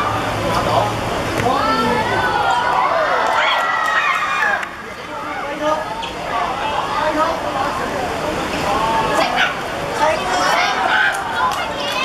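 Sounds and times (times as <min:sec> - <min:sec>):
children shouting: 0:01.5 - 0:05.6, 0:09.1 - 0:12.0.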